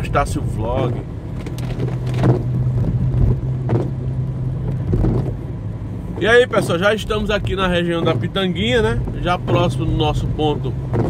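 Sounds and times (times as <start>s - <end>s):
car engine hum: 0.0s - 11.0s
road noise on wet street: 0.0s - 11.0s
windshield wipers swishing: 0.8s - 11.0s.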